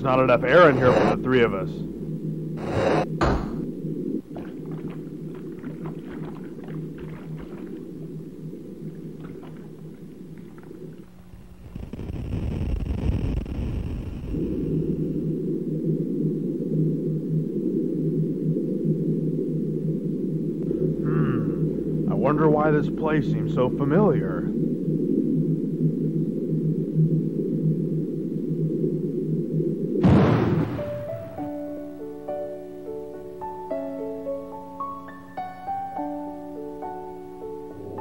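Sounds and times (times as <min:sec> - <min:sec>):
muffled underwater drone: 0:00.0 - 0:30.0.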